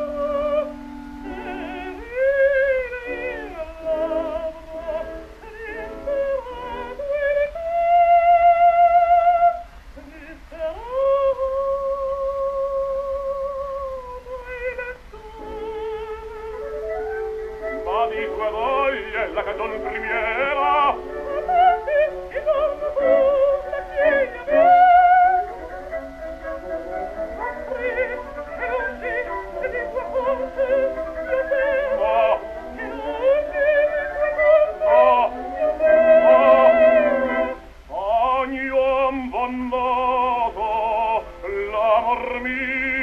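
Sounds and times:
operatic voice singing with vibrato: 0.0s - 43.0s.

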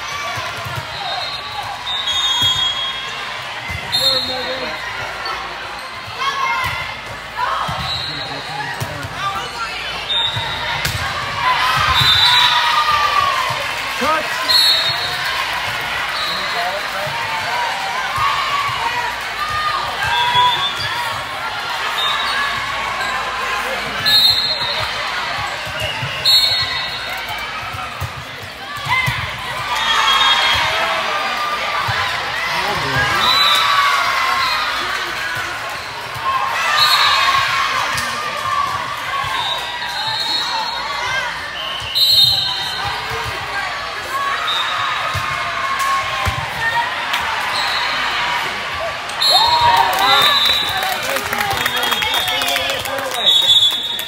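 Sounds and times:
crowd and player voices: 0.0s - 54.0s.

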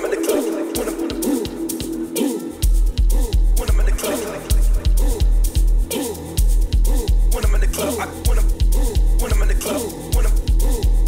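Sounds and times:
bass-heavy dance music: 0.0s - 11.0s.

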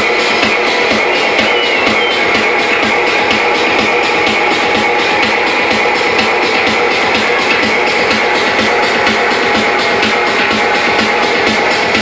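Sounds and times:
techno over club sound system: 0.0s - 12.0s.

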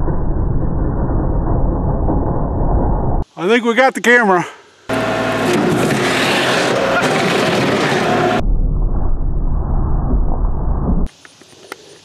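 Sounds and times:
diesel tractor engine running: 4.9s - 8.4s.

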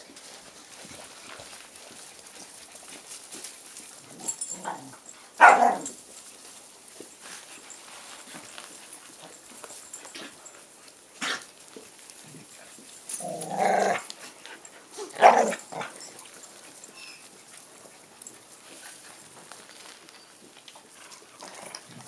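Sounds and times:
light crackly rustling: 0.0s - 22.0s
puppies playing: 0.0s - 22.0s
puppy bark: 4.6s - 6.0s, 15.0s - 16.0s.

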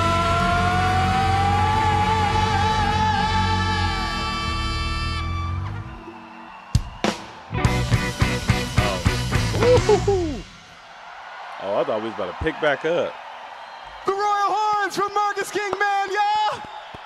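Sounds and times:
person singing long note: 0.0s - 5.4s
rock band chord: 7.6s - 9.7s.

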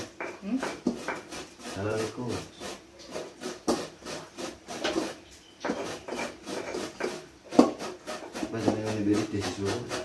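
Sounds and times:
pestle grinding in mortar: 0.0s - 10.0s.

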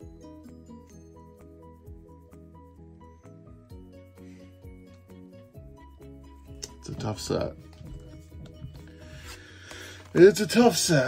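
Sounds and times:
faint background music: 0.0s - 11.0s
cards sliding and rubbing: 8.8s - 10.3s.

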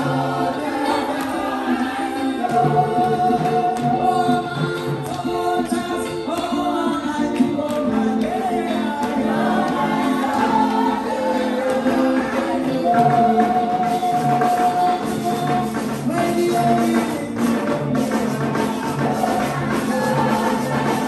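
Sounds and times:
congregation singing gospel song: 0.0s - 21.0s
hand clapping: 0.0s - 21.0s.

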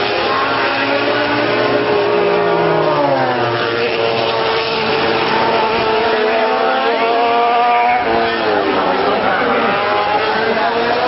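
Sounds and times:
voices: 5.1s - 11.0s.

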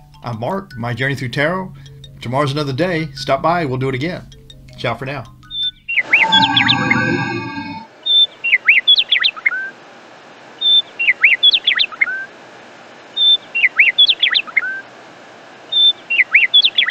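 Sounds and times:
songbird chirps and whistles: 5.5s - 9.5s, 15.7s - 16.9s
faint steady hiss: 9.6s - 16.9s.

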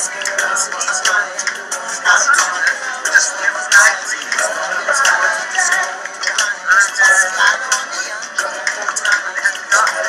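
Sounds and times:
overlapping music and voices: 0.0s - 10.0s.

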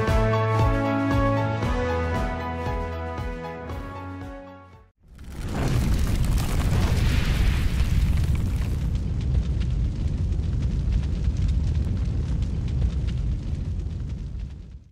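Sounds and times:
fire-like crackling: 5.0s - 14.9s
deep rumble with rush: 5.1s - 14.9s.

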